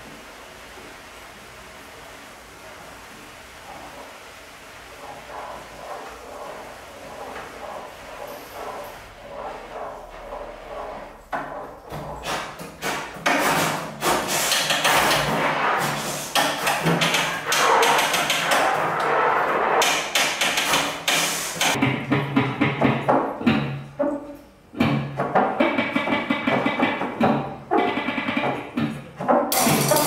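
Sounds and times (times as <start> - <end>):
free improvised music: 3.7 - 30.0
percussive strikes and scrapes: 4.9 - 30.0.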